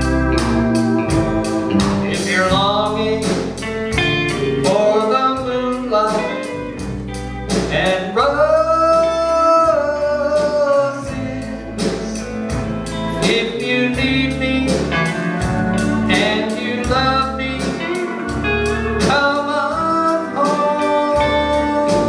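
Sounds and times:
live country band playing: 0.0 - 22.0
pedal steel guitar sliding notes: 0.0 - 22.0.

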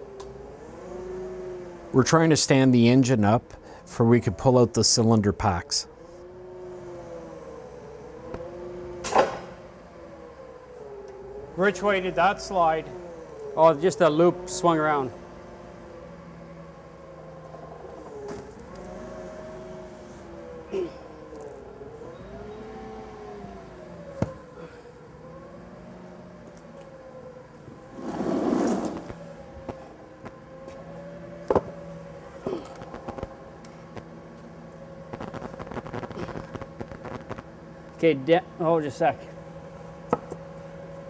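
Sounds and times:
forklift engine running: 0.0 - 41.0.

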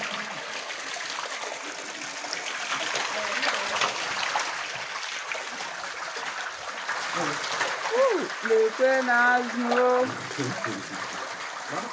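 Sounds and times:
water pouring into pond: 0.0 - 11.9.

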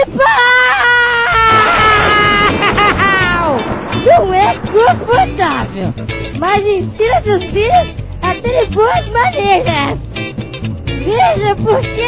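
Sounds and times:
music: 1.3 - 12.0.

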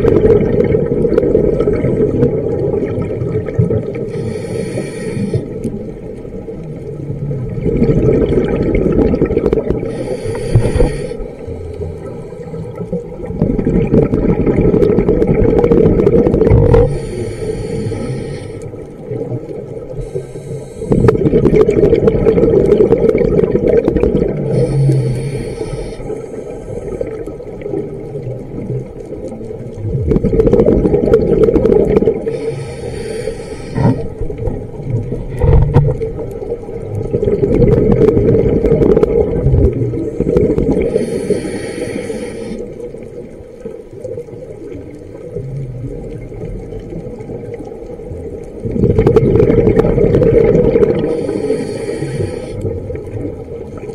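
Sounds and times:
regulator hissing inhales: 4.1 - 5.6, 9.9 - 12.8, 16.8 - 18.8, 20.0 - 21.2, 24.5 - 27.1, 32.3 - 34.2, 40.8 - 42.8, 51.0 - 52.7.

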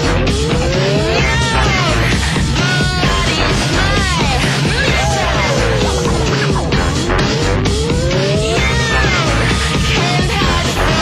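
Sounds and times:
loud rock music: 0.0 - 11.0.

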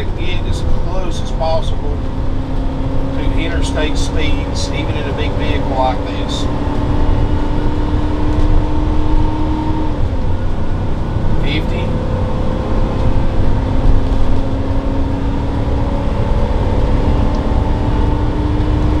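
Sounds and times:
engine and road rumble: 0.0 - 19.0.

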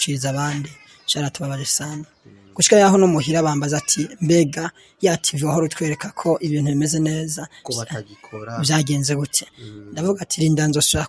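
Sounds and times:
man talking sing-song: 7.7 - 8.8, 9.6 - 10.0.

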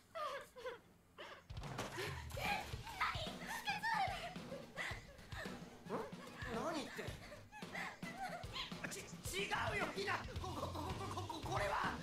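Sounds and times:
background music: 1.5 - 12.0.

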